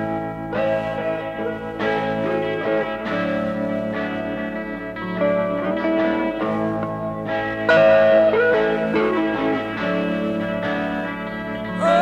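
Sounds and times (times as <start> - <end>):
instrumental guitar music: 0.0 - 12.0.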